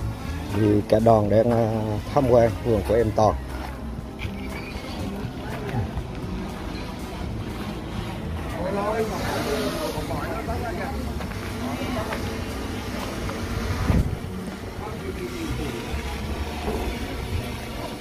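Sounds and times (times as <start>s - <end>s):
distant people chattering: 0.0s - 18.0s.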